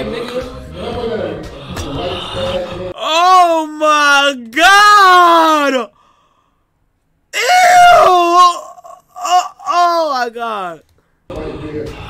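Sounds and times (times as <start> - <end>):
man shouting in disgust: 3.0 - 5.9, 7.4 - 10.8.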